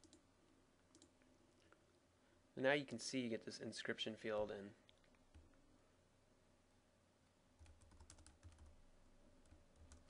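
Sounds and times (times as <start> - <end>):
computer mouse clicks: 0.9 - 1.2.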